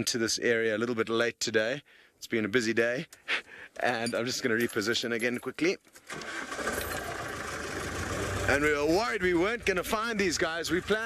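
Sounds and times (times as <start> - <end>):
vehicle engine starting and running: 6.1 - 11.0.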